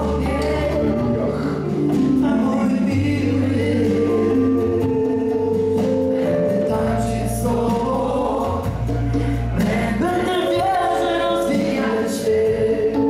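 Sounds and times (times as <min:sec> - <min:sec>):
drums: 0:00.0 - 0:13.0
group of voices singing: 0:00.0 - 0:13.0
guitar: 0:00.0 - 0:13.0
keyboard: 0:00.0 - 0:13.0.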